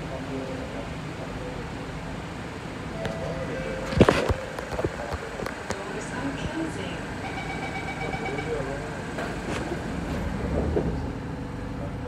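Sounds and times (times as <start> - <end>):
high warning tone: 2.9 - 8.9
train doors sliding shut: 9.1 - 11.3.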